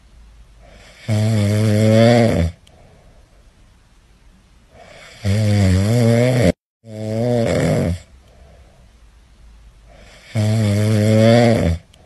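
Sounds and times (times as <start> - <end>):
dog snoring: 0.6 - 2.6, 4.8 - 8.1, 9.9 - 11.9.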